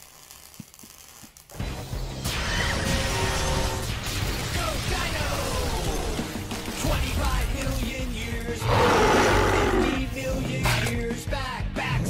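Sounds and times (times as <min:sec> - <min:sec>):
background music: 0:01.4 - 0:12.0
cartoon monster roar: 0:08.6 - 0:10.1.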